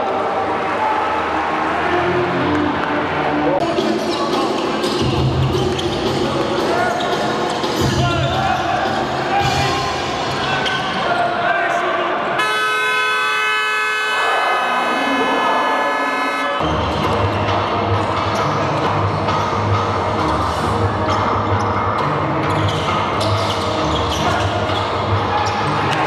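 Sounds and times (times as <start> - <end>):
noisy arena crowd: 0.0 - 26.0
horn blast: 12.4 - 16.7.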